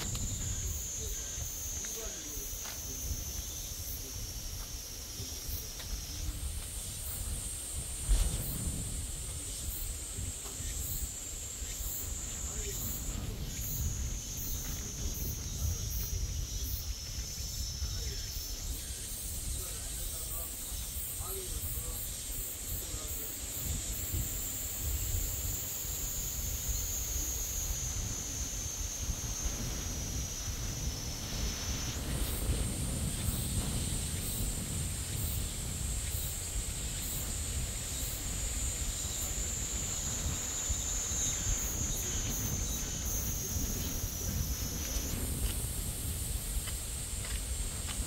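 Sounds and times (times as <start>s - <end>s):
high insect buzz: 0.0s - 48.0s
wind buffeting microphone: 0.0s - 48.0s.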